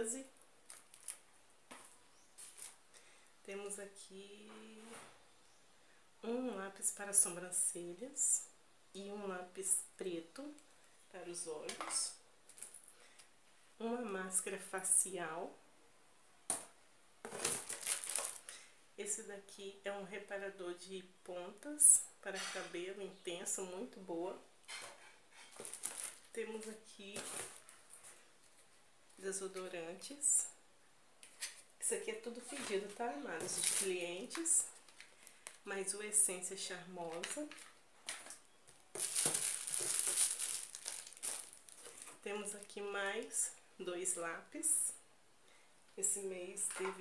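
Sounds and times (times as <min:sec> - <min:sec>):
plastic wrappers crinkling: 0:00.6 - 0:02.8, 0:12.4 - 0:13.3, 0:17.2 - 0:18.7, 0:25.3 - 0:28.7, 0:32.4 - 0:35.7, 0:37.0 - 0:42.8.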